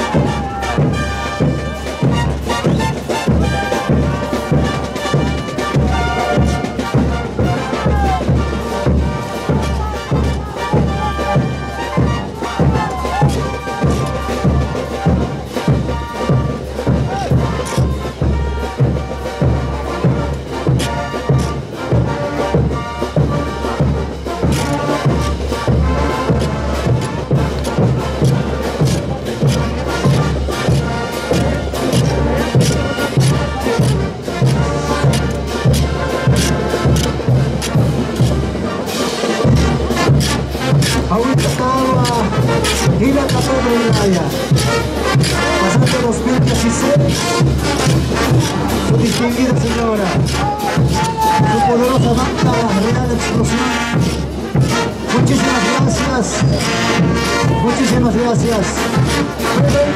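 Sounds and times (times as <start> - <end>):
brass band playing dance music: 0.0 - 59.9.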